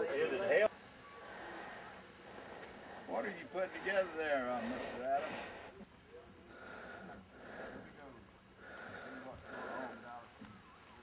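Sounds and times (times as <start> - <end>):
faint distant voices talking: 0.0 - 11.0.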